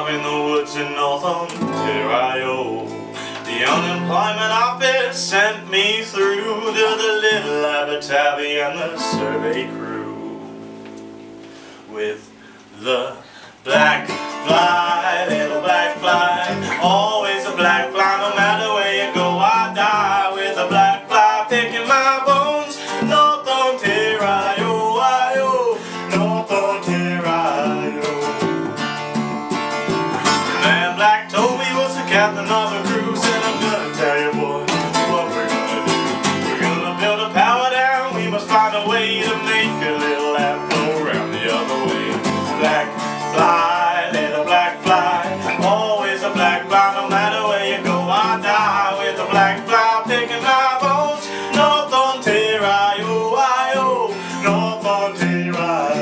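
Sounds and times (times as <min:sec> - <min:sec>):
man singing: 0:00.0 - 0:10.6, 0:11.9 - 0:28.9, 0:30.1 - 0:56.0
strummed acoustic guitars: 0:00.0 - 0:56.0.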